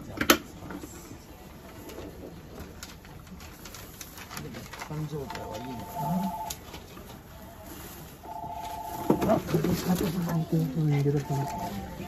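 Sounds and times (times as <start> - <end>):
papers rustling: 1.6 - 12.0.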